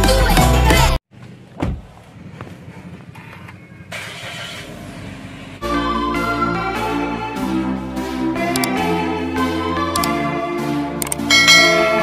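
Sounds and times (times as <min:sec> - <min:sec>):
car engine rumble from inside: 0:01.1 - 0:05.6.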